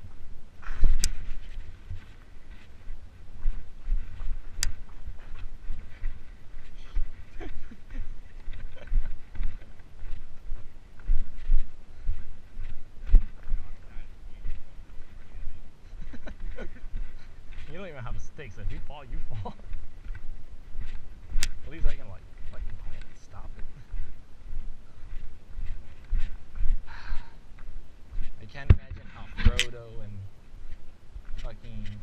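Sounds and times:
footsteps on rough trail: 0.0s - 32.0s
sharp clicks: 0.8s - 1.2s, 4.5s - 4.8s.

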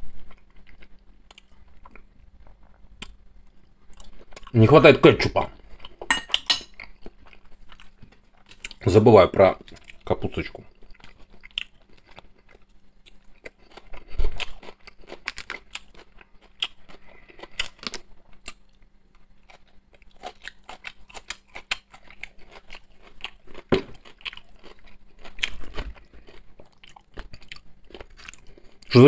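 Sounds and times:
man chewing food: 0.0s - 4.6s, 5.4s - 8.8s, 9.5s - 28.9s
crunching salad: 3.8s - 29.0s.

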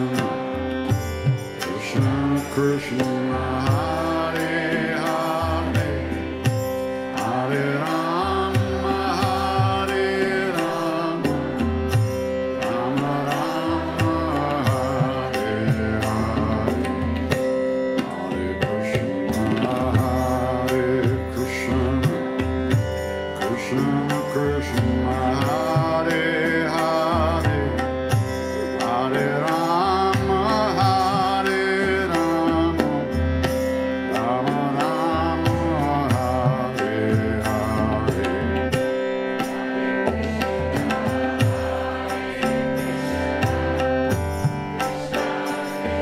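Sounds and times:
harmonium chord: 0.0s - 46.0s
person chanting: 0.0s - 46.0s
tabla playing: 0.0s - 46.0s.

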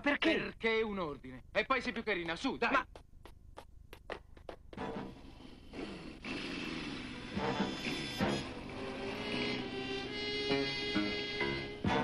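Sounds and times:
small motorcycle engine revving: 5.3s - 11.8s.

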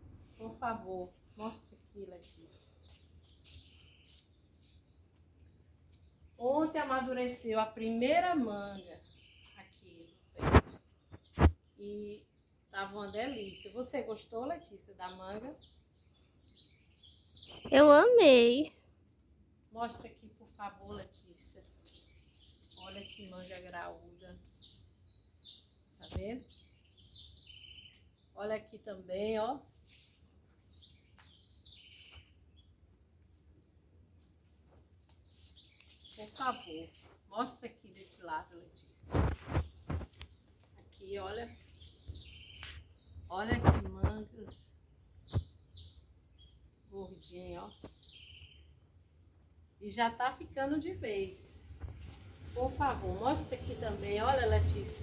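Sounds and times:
small birds chirping: 0.0s - 55.0s
high-pitched bird chirps: 1.1s - 4.8s, 17.0s - 18.7s.

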